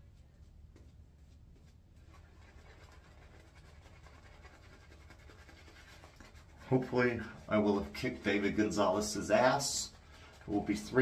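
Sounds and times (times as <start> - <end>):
shaving brush swishing on face: 0.0 - 11.0.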